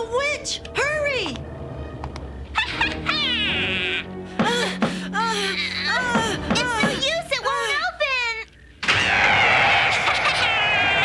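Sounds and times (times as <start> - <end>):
background music with low notes: 0.0 - 7.6.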